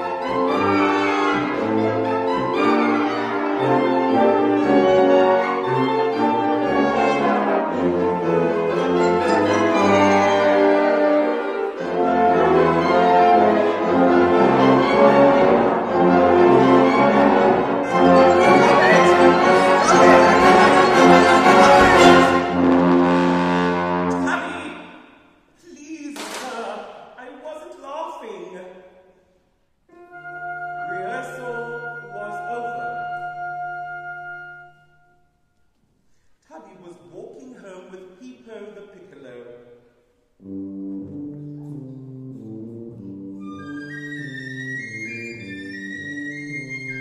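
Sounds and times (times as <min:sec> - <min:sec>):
wind band playing chord: 0:05.3 - 0:24.5.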